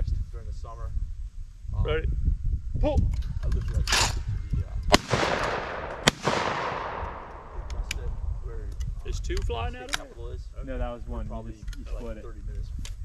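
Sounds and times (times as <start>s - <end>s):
shotgun shots echoing: 4.9s - 7.8s.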